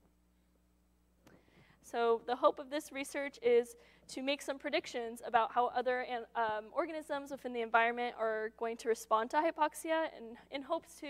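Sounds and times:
faint low room hum: 0.0s - 11.0s
woman speaking: 1.9s - 11.0s.

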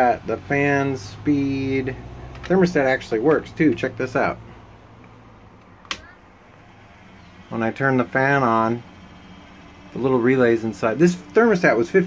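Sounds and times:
air conditioning hum: 0.0s - 12.0s.

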